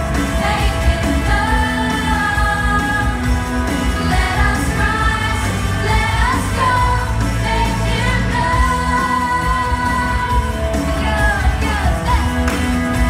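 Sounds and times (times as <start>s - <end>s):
upbeat pop worship song: 0.0s - 13.0s.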